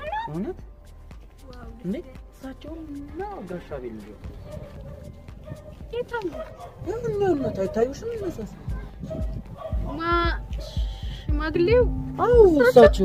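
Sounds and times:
background music: 0.0 - 13.0
people talking: 9.8 - 13.0.

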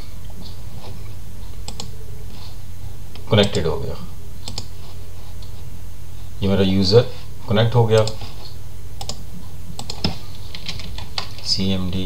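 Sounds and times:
low background hum: 0.0 - 12.0
computer keyboard typing: 1.6 - 1.9, 9.0 - 9.2, 9.8 - 11.4.

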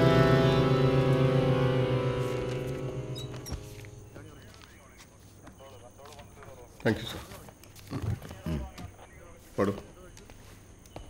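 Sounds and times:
sustained low chord: 0.0 - 4.4.

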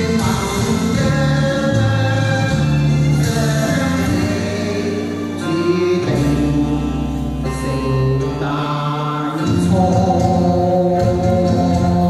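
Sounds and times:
backing track: 0.0 - 12.0.

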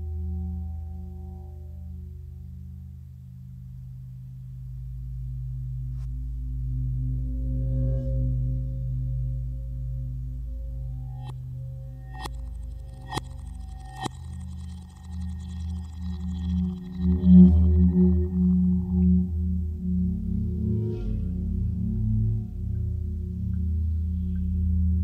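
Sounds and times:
low electronic drone: 7.1 - 25.0.

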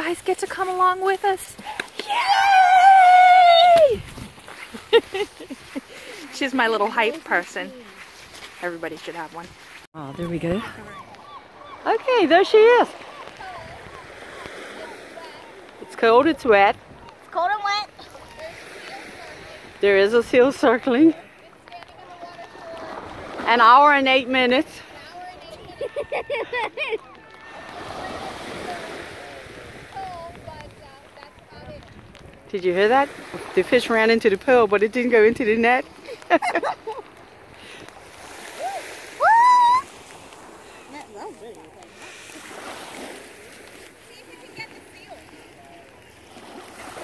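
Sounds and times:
woman speaking: 0.0 - 1.7, 6.2 - 7.9, 8.6 - 11.0, 11.8 - 12.9
gentle surf: 0.0 - 47.0
wind: 0.0 - 47.0.

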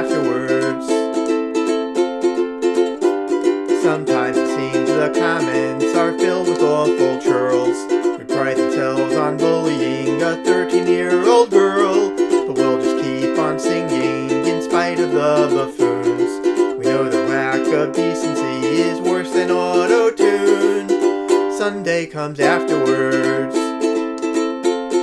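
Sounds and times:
person singing: 0.0 - 25.0
ukulele strumming: 0.0 - 25.0.

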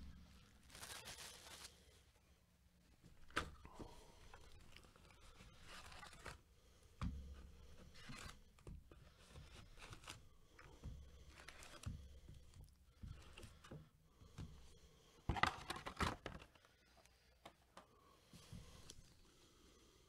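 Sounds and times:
foil packs crinkling: 0.4 - 1.9.

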